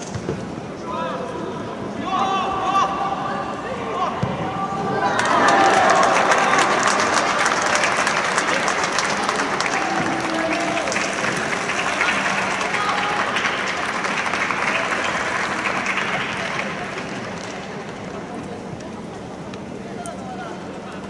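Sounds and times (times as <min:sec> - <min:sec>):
spectators clapping: 0:05.1 - 0:18.3.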